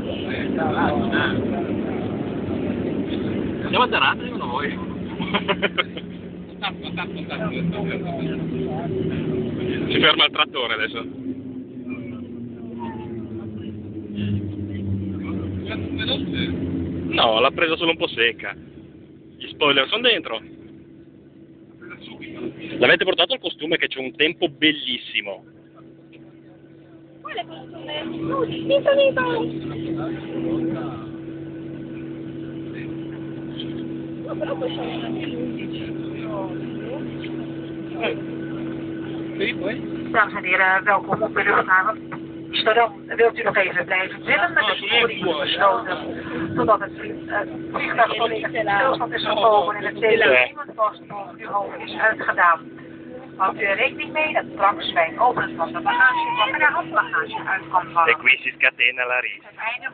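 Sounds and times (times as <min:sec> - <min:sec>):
airplane cabin engine hum: 0:00.0 - 0:59.9
faint passenger voices: 0:00.0 - 0:59.9.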